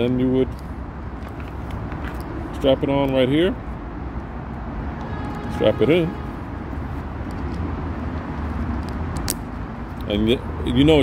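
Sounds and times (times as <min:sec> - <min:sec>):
outdoor background noise: 0:00.0 - 0:11.0
helmet buckle snapping click: 0:08.7 - 0:10.1.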